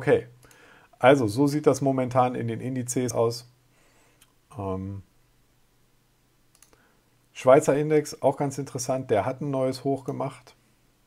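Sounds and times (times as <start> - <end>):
faint clicks: 6.5 - 6.8.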